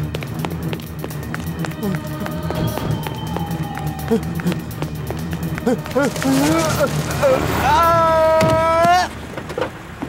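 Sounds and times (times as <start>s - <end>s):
quick running footsteps: 0.0s - 7.2s
background music score: 0.0s - 9.2s.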